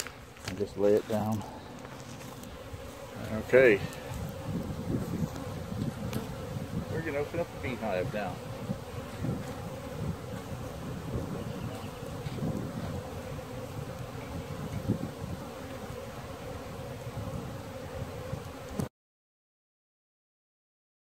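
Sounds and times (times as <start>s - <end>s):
bees buzzing: 0.0s - 18.9s.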